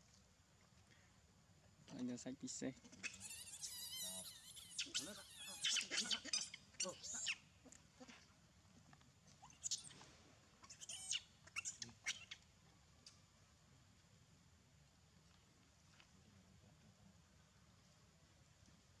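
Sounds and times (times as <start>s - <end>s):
monkey screaming: 2.8s - 7.5s, 10.7s - 12.4s.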